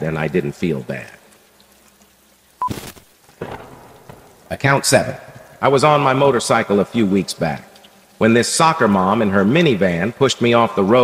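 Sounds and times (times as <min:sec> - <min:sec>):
thunder crack: 0:03.3 - 0:06.2
thunder rumble: 0:03.3 - 0:06.7.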